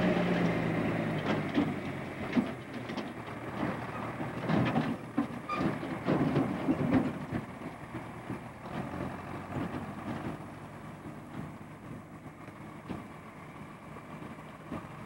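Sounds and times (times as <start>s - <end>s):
tractor engine running: 0.0s - 15.0s.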